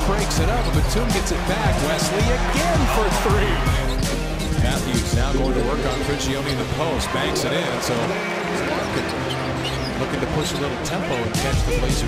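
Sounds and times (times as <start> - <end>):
basketball court sounds: 0.0 - 6.8
arena crowd noise: 0.0 - 12.0.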